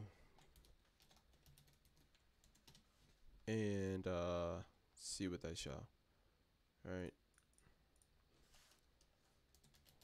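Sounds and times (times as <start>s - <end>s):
typing on computer keyboard: 0.4s - 2.9s, 9.5s - 10.0s.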